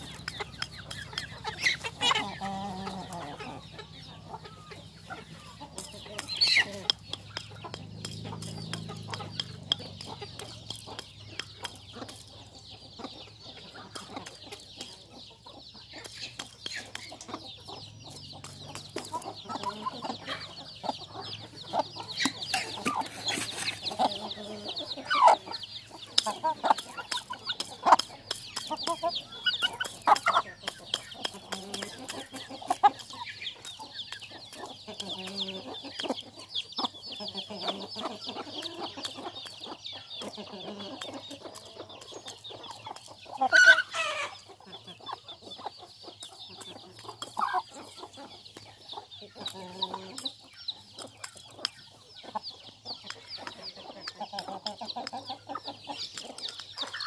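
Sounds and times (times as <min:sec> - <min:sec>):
beaks pecking grain from bowl: 0:00.0 - 0:57.0
chickens clucking: 0:00.0 - 0:57.0
continuous high chirping: 0:00.0 - 0:57.0
loud chicken call: 0:43.5 - 0:44.4.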